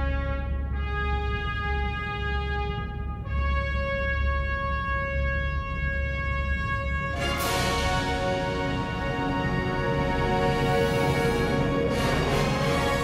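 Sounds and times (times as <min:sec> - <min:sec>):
deep rumble: 0:00.0 - 0:13.0
soundtrack music with held chords: 0:00.0 - 0:13.0.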